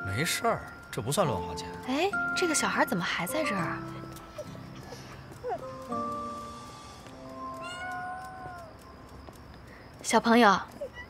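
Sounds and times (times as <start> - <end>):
soft background music: 0.0 - 10.7
cat meowing: 7.5 - 8.7.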